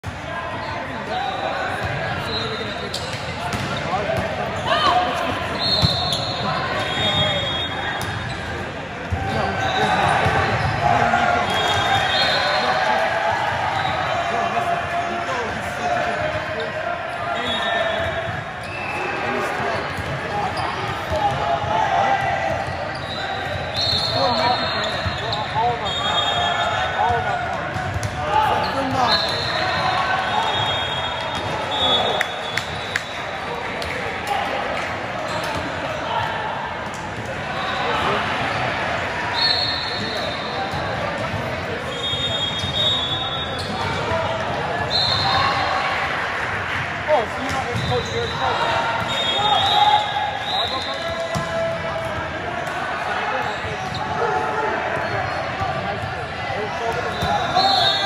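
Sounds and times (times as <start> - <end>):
sneaker squeaks on court floor: 1.8 - 4.9, 5.6 - 10.8, 17.4 - 21.3, 22.6 - 33.3, 35.2 - 35.8, 39.4 - 44.1, 47.4 - 51.6, 53.4 - 54.2, 57.0 - 58.0
volleyballs struck and bouncing: 3.1 - 4.4.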